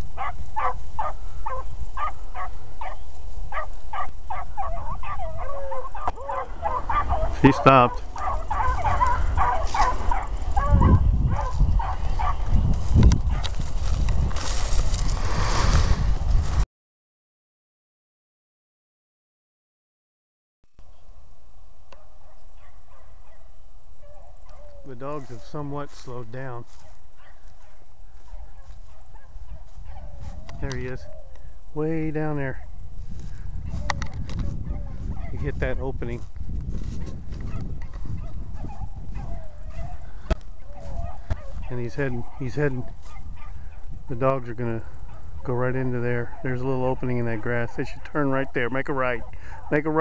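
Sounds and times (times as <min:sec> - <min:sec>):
dogs baying and yelping: 0:00.1 - 0:12.5, 0:13.2 - 0:13.6, 0:22.0 - 0:25.4, 0:26.8 - 0:31.4, 0:33.6 - 0:35.5, 0:37.0 - 0:43.9, 0:44.9 - 0:45.5, 0:46.2 - 0:48.6.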